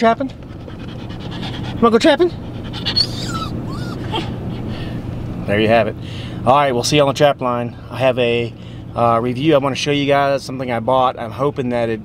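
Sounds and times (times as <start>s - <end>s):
low vehicle hum: 0.0s - 12.0s
small dog whimpering: 2.4s - 4.6s.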